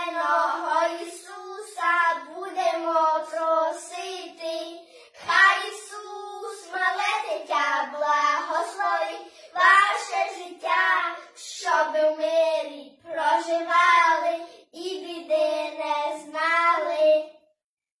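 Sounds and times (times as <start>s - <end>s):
children singing a carol: 0.0s - 16.9s.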